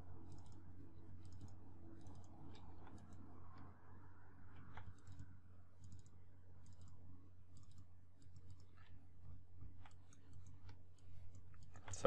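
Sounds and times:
low steady hum: 0.0s - 12.0s
computer mouse clicks: 0.2s - 3.7s, 4.5s - 9.0s, 9.7s - 12.0s.

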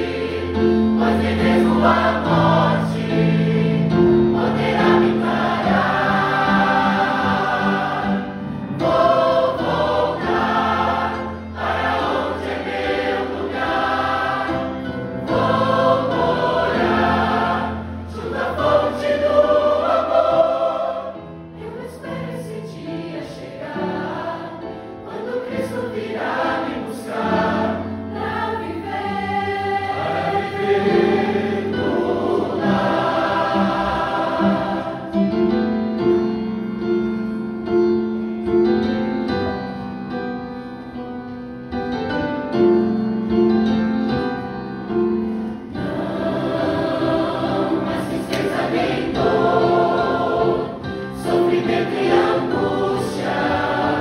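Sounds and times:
choir singing a hymn: 0.0s - 54.0s.

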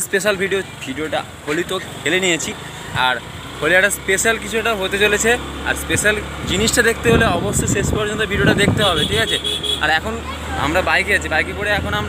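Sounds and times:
man talking excitedly: 0.0s - 12.0s
low vehicle rumble: 1.5s - 12.0s.

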